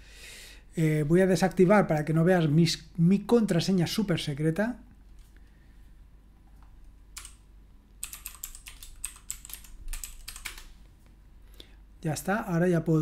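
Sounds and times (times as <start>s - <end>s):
computer keyboard typing: 7.1s - 7.4s, 8.0s - 10.7s.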